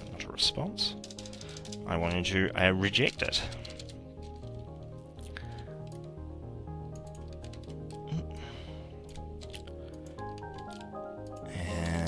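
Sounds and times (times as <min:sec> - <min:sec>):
soft background music: 0:00.0 - 0:12.0
faint keyboard clicks: 0:01.0 - 0:01.8, 0:03.1 - 0:06.2, 0:06.9 - 0:12.0.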